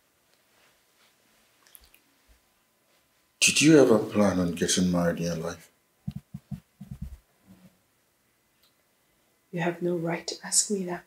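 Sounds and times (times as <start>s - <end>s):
soft low thump: 6.1s - 7.2s.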